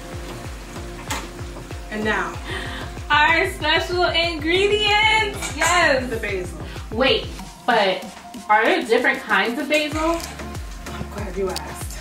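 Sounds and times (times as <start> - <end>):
chicken sizzling in a pan: 0.0 - 3.0
background music with steady beat: 0.0 - 12.0.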